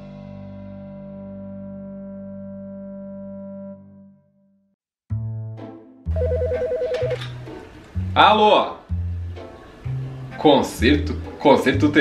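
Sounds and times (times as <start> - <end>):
background music with bass line: 5.1 - 12.0
telephone ringing: 6.1 - 7.3.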